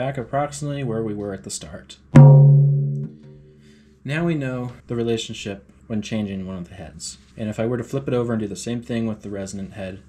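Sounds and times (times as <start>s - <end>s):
tom drum struck with mallet: 2.2s - 3.6s.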